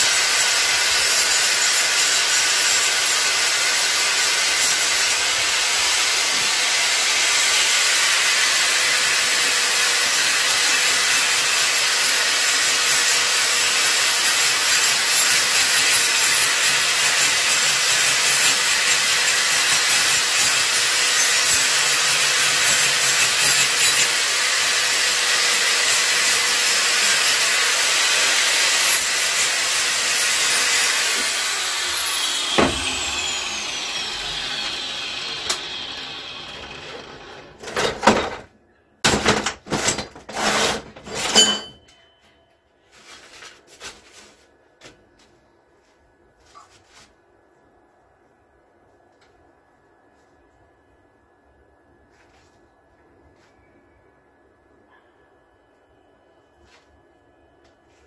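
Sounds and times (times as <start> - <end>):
angle grinder whining: 0.0 - 37.8.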